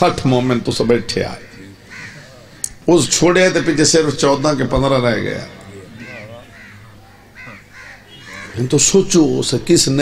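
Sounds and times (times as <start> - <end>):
man speaking through microphone: 0.0 - 6.7, 8.2 - 10.0.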